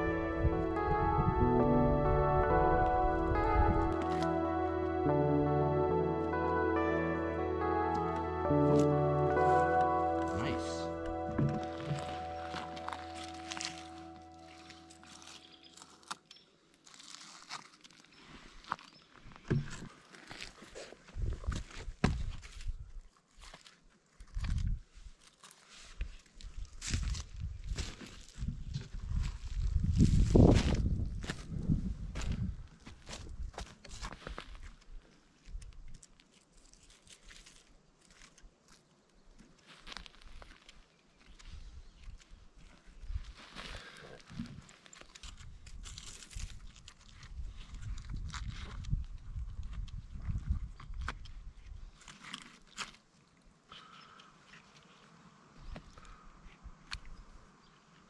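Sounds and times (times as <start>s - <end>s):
background music: 0.0s - 15.5s
footsteps on forest litter: 7.2s - 31.6s, 32.2s - 35.0s, 36.3s - 38.8s, 39.6s - 48.5s.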